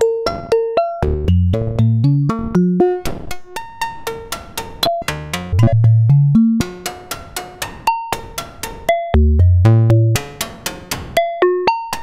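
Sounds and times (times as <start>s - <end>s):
plucked synth notes: 1.0s - 7.1s, 9.1s - 10.3s
deep bass notes: 1.1s - 2.8s, 5.0s - 6.6s, 9.2s - 10.2s.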